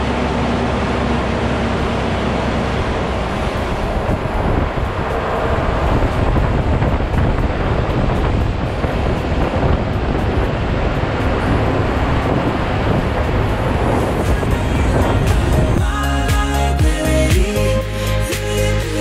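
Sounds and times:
truck engine and tyre noise: 0.0s - 19.0s
wind buffeting microphone: 2.4s - 15.8s.

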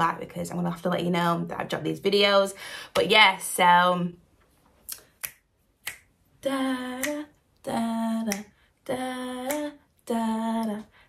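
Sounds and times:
finger snaps: 4.9s - 6.2s, 6.9s - 7.4s, 8.2s - 8.6s, 9.4s - 9.8s.

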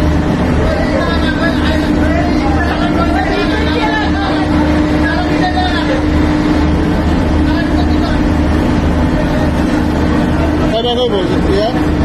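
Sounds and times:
boat engine running: 0.0s - 12.0s
faint voices: 0.0s - 12.0s.

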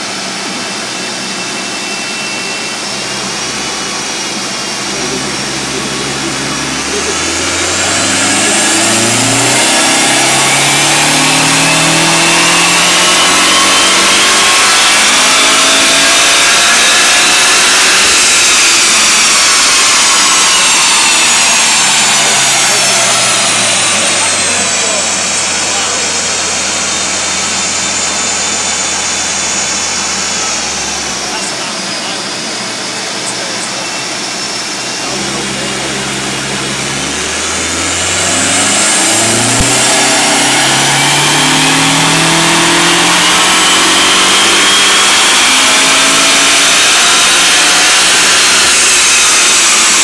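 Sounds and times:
car engine revving on dyno: 0.0s - 50.0s
turbo whine: 0.0s - 50.0s.

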